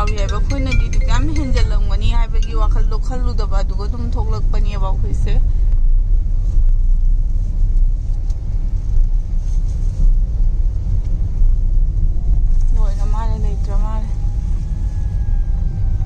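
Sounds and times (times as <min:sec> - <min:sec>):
person speaking: 0:00.0 - 0:05.4
car engine and tyre rumble: 0:00.0 - 0:16.0.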